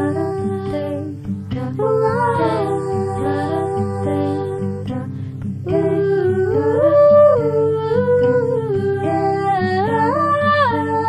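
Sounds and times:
woman wordless singing: 0.0 - 11.0.

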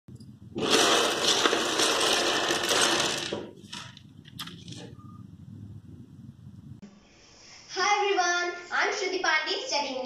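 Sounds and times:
plastic blocks clattering on table: 0.6 - 4.5.

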